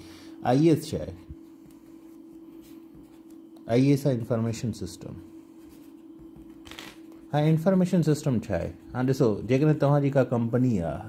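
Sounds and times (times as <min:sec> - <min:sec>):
quiet steady hum: 0:00.0 - 0:11.0.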